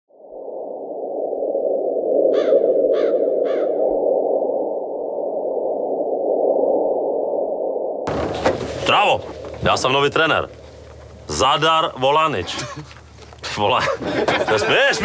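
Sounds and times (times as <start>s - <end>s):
muffled wind rushing: 0.1s - 11.3s.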